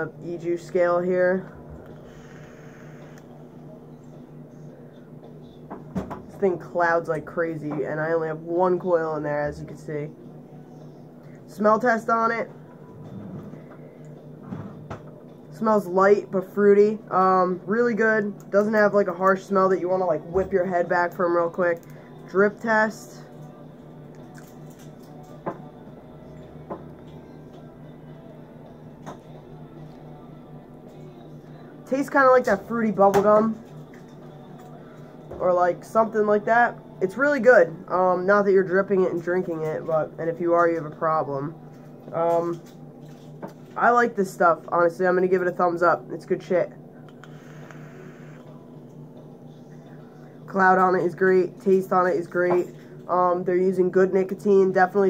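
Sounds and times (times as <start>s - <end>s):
steady low hum: 0.0s - 55.0s
vape airflow hiss: 47.2s - 48.5s.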